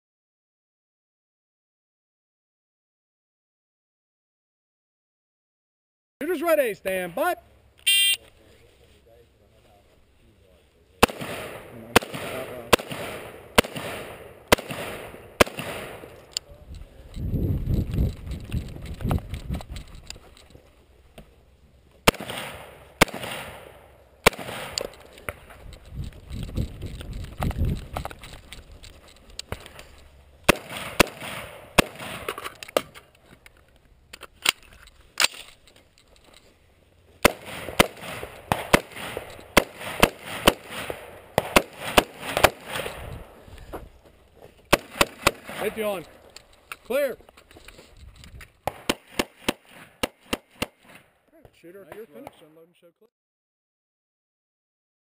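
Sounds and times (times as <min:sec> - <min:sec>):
rifle shots: 0:11.0 - 0:16.4, 0:22.0 - 0:25.5, 0:30.4 - 0:33.0, 0:37.2 - 0:43.4, 0:44.7 - 0:46.1, 0:48.6 - 0:51.1.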